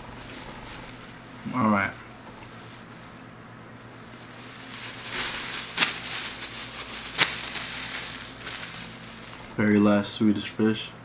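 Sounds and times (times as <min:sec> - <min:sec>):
plastic bag rustling: 0:00.0 - 0:09.8.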